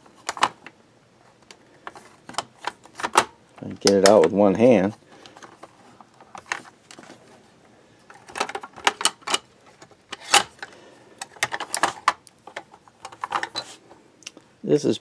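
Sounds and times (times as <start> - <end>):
plastic parts clicking and knocking: 0.2 - 0.8, 1.4 - 4.4, 5.1 - 7.2, 8.1 - 13.7.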